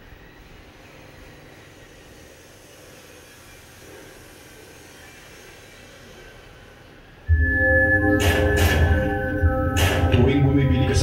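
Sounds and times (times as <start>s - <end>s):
low rumble: 7.3s - 11.0s.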